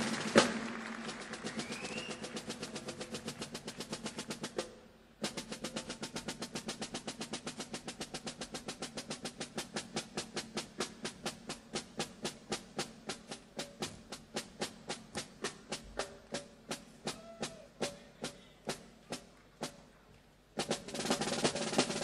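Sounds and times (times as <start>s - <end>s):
fast light drum strokes: 0.0s - 22.0s.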